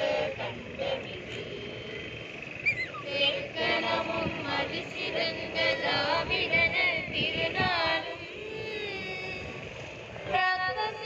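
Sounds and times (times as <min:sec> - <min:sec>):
group of people singing in unison: 0:00.0 - 0:02.4, 0:03.0 - 0:09.2.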